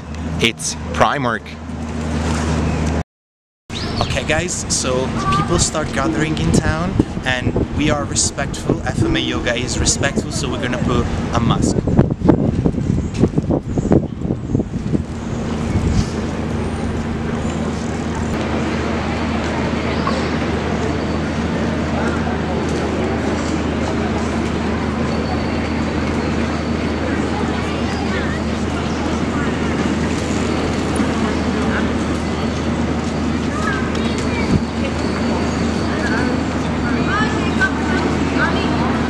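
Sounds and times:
street sound: 0:00.0 - 0:03.0, 0:03.7 - 0:39.0
traffic hum: 0:00.0 - 0:03.0, 0:03.7 - 0:39.0
urban rumble: 0:00.0 - 0:03.0, 0:03.7 - 0:39.0
wind on microphone: 0:03.8 - 0:18.4
indistinct voices of passers-by: 0:03.8 - 0:39.0.

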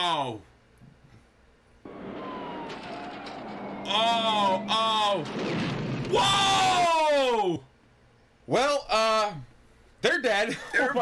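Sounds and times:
faint falling whine: 0:01.8 - 0:07.2
car engine and road noise: 0:01.9 - 0:06.0.

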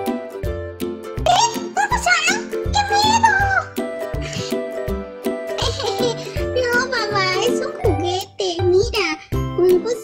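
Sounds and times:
children's music with steady beat: 0:00.0 - 0:10.0.

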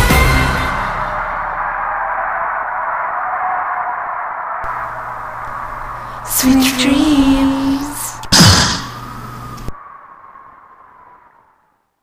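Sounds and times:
steady static hiss: 0:04.6 - 0:09.8
low hum: 0:04.6 - 0:11.4.

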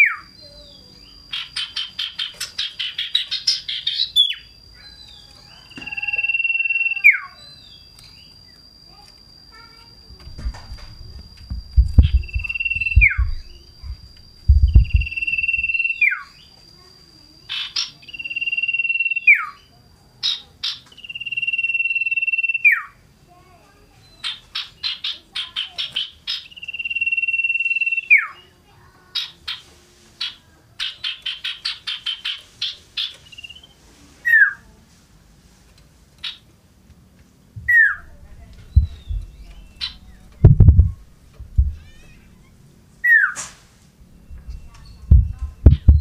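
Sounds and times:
bird whistling: 0:00.0 - 0:08.7, 0:09.6 - 0:16.5, 0:17.5 - 0:23.0, 0:24.0 - 0:28.6, 0:30.2 - 0:34.6, 0:37.7 - 0:42.1, 0:43.0 - 0:43.4, 0:44.1 - 0:46.0
low thumps: 0:10.1 - 0:15.7, 0:37.6 - 0:42.1, 0:44.0 - 0:46.0.

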